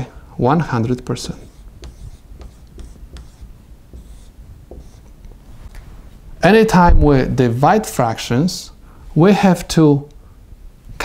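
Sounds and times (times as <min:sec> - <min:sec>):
marker squeaking on whiteboard: 0:00.8 - 0:05.2
marker taps: 0:01.4 - 0:05.1.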